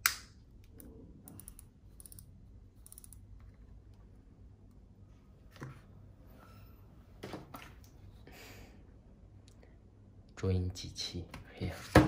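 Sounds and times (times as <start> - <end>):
sharp plastic snap: 0.0 - 0.4.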